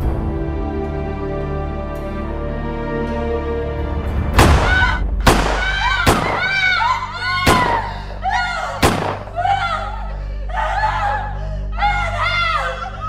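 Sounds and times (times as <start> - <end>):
film score music: 0.0 - 13.0
handgun shots: 5.3 - 6.5, 7.4 - 7.9, 8.8 - 9.3.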